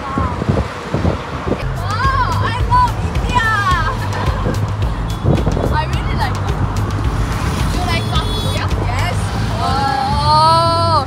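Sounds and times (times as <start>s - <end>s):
auto-rickshaw engine drone: 0.0s - 11.0s
music: 1.6s - 9.4s.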